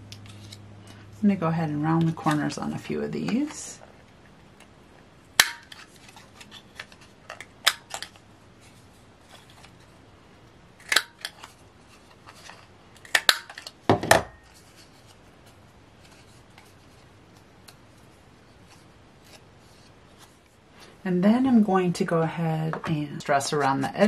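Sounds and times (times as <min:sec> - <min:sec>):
paper handling: 0:00.1 - 0:01.0, 0:05.6 - 0:09.9, 0:14.5 - 0:20.9.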